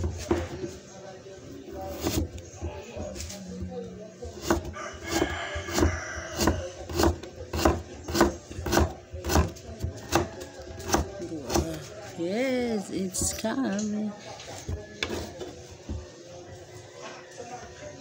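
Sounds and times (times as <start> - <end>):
knife slicing carrot on board: 1.8 - 3.7, 4.3 - 11.7
rooster crowing: 4.7 - 6.8.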